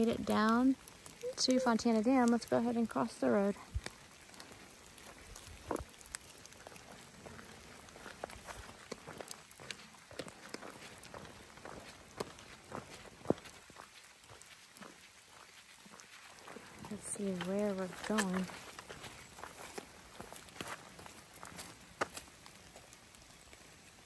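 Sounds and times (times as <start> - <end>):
light rain falling: 0.0 - 24.0
raindrop ticks: 0.0 - 24.0
footsteps on a wet road: 3.5 - 24.0.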